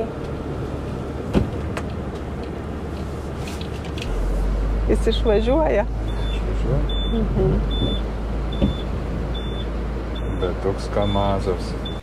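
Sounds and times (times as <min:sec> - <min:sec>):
van engine running at low revs: 0:00.0 - 0:12.0.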